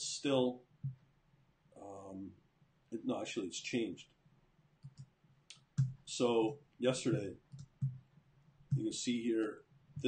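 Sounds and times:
computer mouse clicks: 4.8s - 6.0s, 7.1s - 8.0s.

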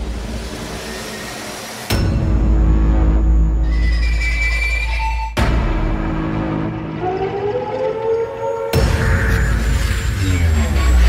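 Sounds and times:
dense wash of noise: 0.0s - 2.0s
entrance music: 0.0s - 11.0s.

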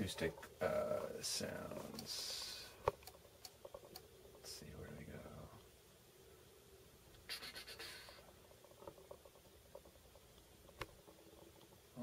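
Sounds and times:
computer mouse and keyboard clicking: 2.9s - 4.1s.

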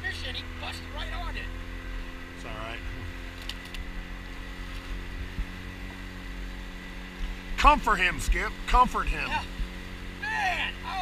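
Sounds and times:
outboard motor running: 0.0s - 11.0s
water rushing along hull: 0.0s - 11.0s.

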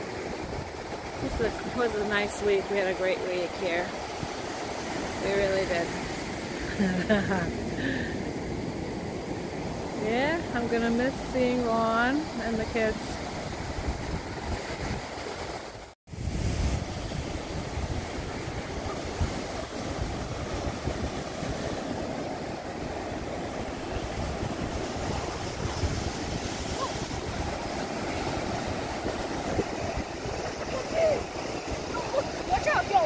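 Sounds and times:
ocean surf breaking: 0.0s - 33.0s
wind on microphone: 0.0s - 33.0s.

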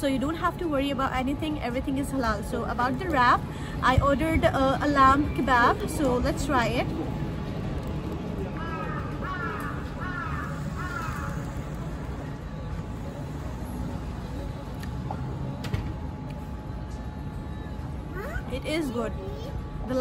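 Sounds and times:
city street traffic: 0.0s - 20.0s.

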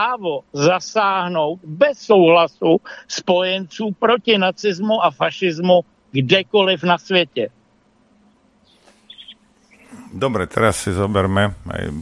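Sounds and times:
faint high chirps: 5.7s - 11.7s.

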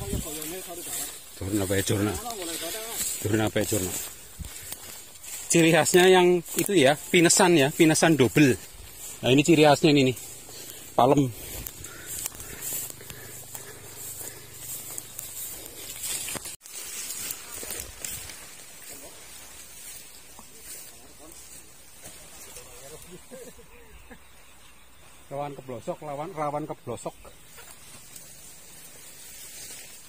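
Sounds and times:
person speaking: 0.0s - 4.8s, 5.4s - 15.7s
rustling outdoor noise: 0.0s - 30.0s.

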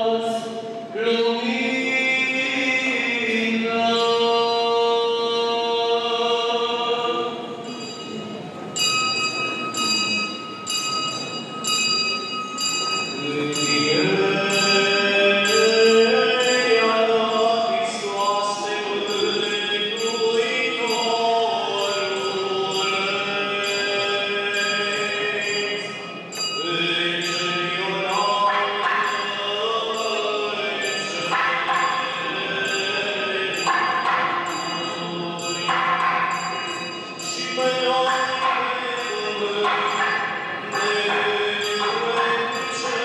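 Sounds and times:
slow chant-like music: 0.0s - 8.2s, 12.7s - 43.0s
bell ringing: 1.4s - 43.0s.

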